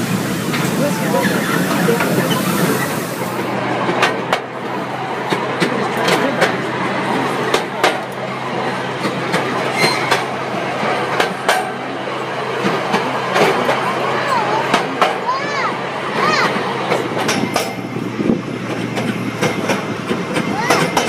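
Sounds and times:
train wheels clicking over rail joints: 0.0 - 6.7, 7.4 - 8.2, 9.0 - 12.0, 12.6 - 13.9, 14.6 - 15.5, 16.1 - 21.0.

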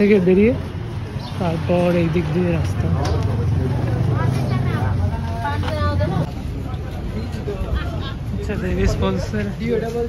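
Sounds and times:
chatter of passers-by: 0.0 - 10.0.

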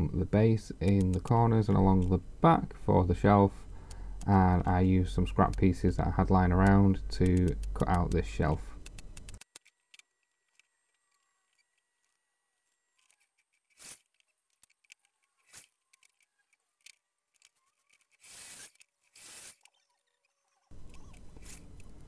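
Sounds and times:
knocks and clicks of handled pieces: 3.6 - 22.0
short bursts of noise: 17.8 - 22.0.

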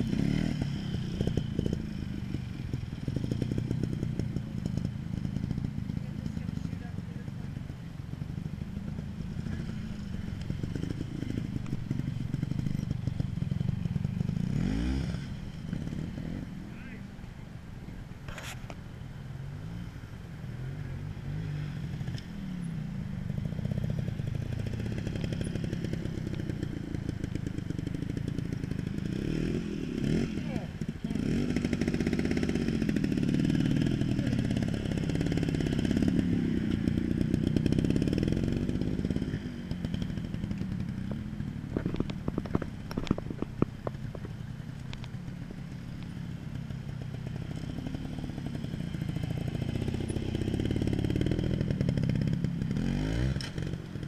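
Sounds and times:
motorcycle engine revving: 0.0 - 17.3, 19.2 - 54.0.

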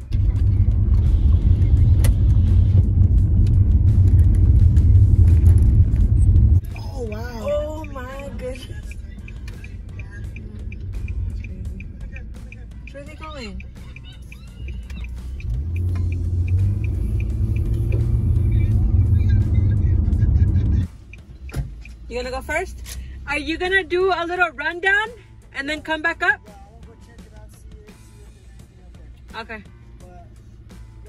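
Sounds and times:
car engine rumble: 0.0 - 31.0
faint music: 6.6 - 31.0.

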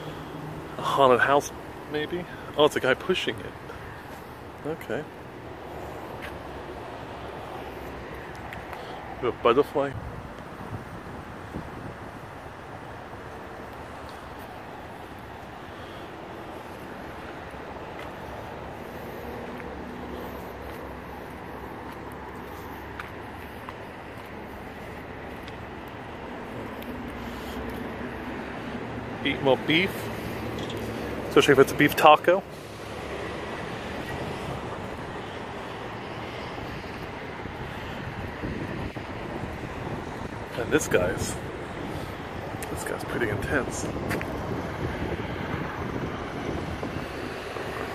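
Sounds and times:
street traffic rumble: 0.0 - 47.9
wind noise on microphone: 9.9 - 12.4, 36.5 - 47.9.

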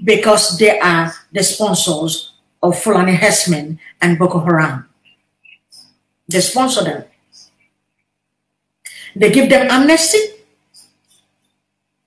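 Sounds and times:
woman speaking: 0.0 - 7.6, 8.9 - 11.0.

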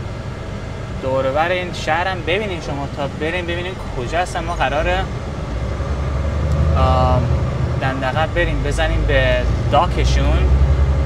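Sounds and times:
diesel truck engine drone: 0.0 - 11.0
road noise: 0.0 - 11.0.

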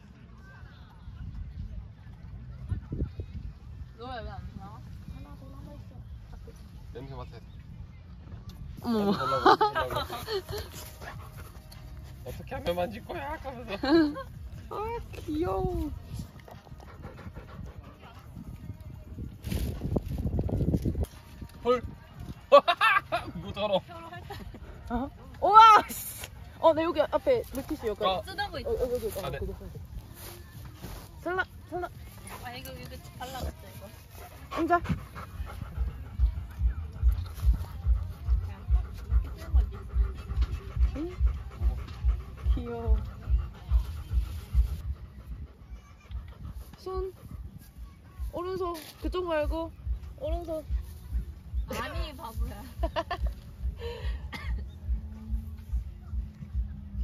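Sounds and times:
large dog panting: 9.8 - 14.4, 16.2 - 18.9, 31.9 - 48.2.

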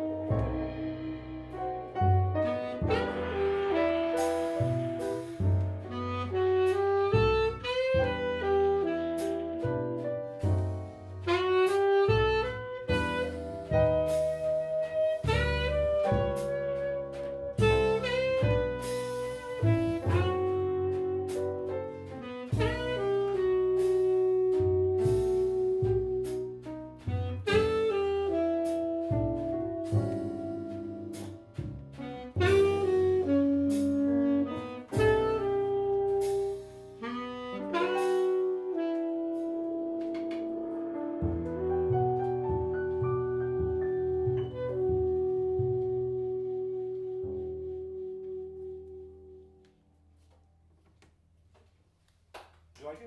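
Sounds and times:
saxophone melody: 0.0 - 10.4, 11.2 - 49.7
bass line: 0.0 - 51.5
jazz rhythm section: 0.0 - 53.0.

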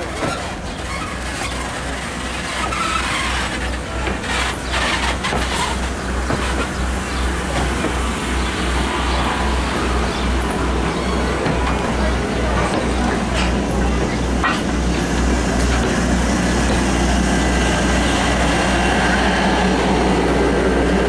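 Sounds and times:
train wheels rumbling on rails: 0.0 - 21.0.

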